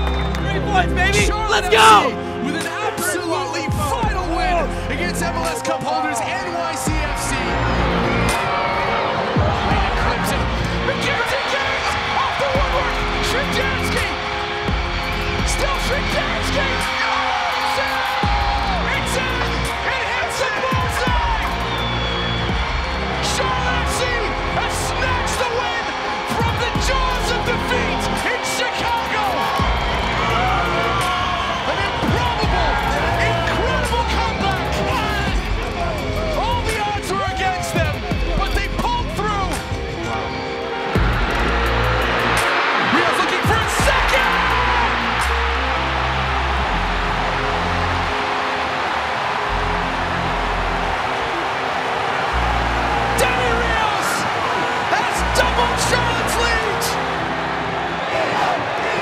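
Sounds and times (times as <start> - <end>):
music with a steady beat: 0.0 - 53.2
crowd cheering: 0.0 - 59.0
excited shouting voices: 0.5 - 4.4, 7.1 - 40.3, 41.0 - 59.0.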